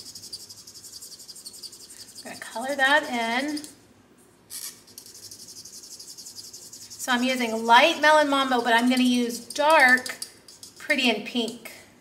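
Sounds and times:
marker scratching on paper: 0.0 - 3.7, 4.6 - 7.3.

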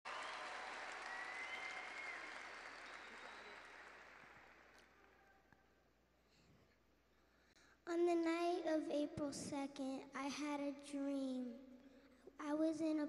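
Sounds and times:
audience applauding: 0.0 - 5.4.

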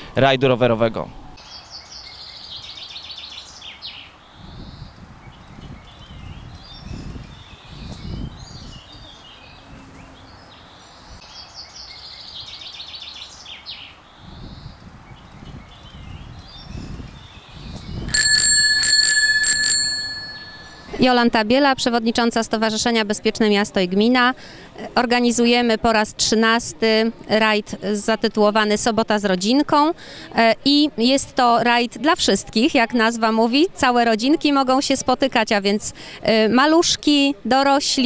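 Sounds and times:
birds chirping: 1.4 - 21.4
bicycle bell ringing: 18.1 - 21.2.

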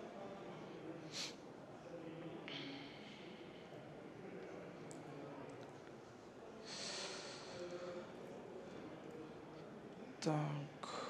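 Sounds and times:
breath into microphone: 6.6 - 8.1.

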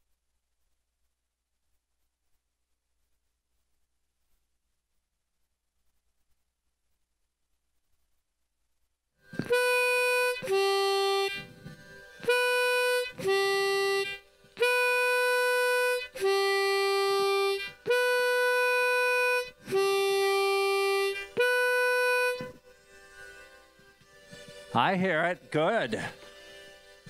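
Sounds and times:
harmonica held notes: 9.2 - 27.0.

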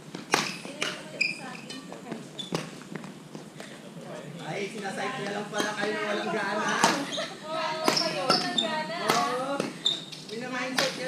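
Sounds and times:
women talking: 0.6 - 2.4, 5.0 - 9.7, 10.3 - 11.0.

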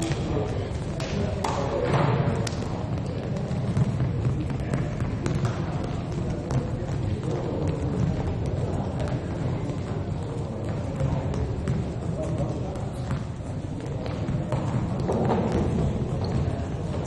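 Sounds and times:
hum of players' voices: 0.0 - 17.0
volleyballs bouncing on floor: 0.0 - 17.0.

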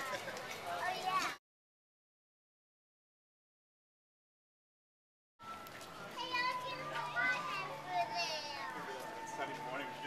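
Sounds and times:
young children chattering: 6.1 - 8.9.

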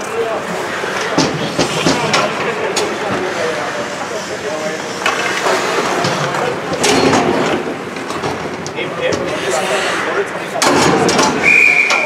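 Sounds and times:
voices echoing in rink: 0.0 - 12.0
hockey sticks clacking: 0.8 - 3.4, 5.0 - 9.4.

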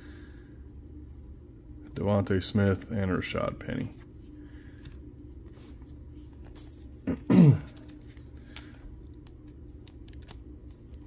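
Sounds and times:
man clearing his throat: 7.0 - 7.8
trading cards clicking and rustling: 7.7 - 11.0.

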